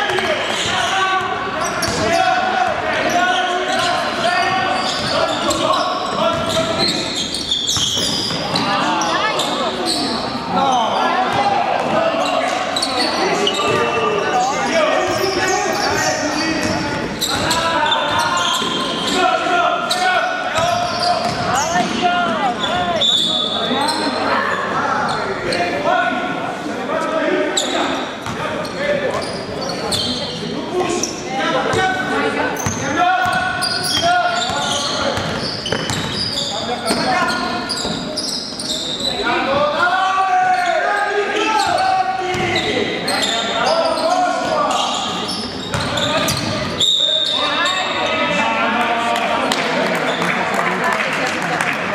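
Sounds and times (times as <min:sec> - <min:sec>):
voices calling out in gym: 0:00.0 - 0:51.9
basketball bouncing on court: 0:16.6 - 0:18.2, 0:20.6 - 0:22.0, 0:32.6 - 0:36.3, 0:41.6 - 0:42.6, 0:45.7 - 0:46.8.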